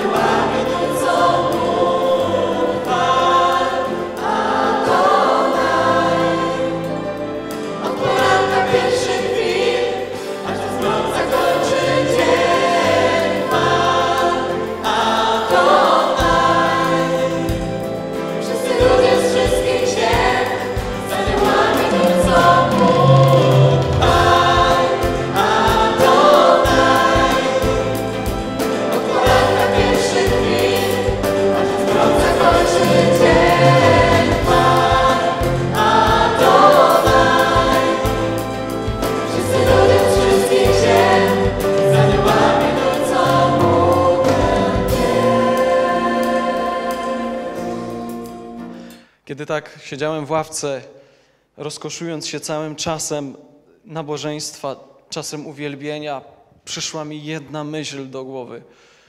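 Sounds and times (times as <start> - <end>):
group singing worship song: 0.0 - 49.1
guitars playing: 15.6 - 48.8.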